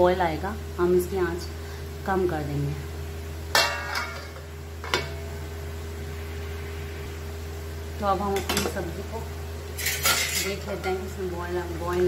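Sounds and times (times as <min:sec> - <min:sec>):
low hum: 0:00.4 - 0:09.9
metal lid clanking on pot: 0:03.5 - 0:05.2, 0:09.8 - 0:11.0.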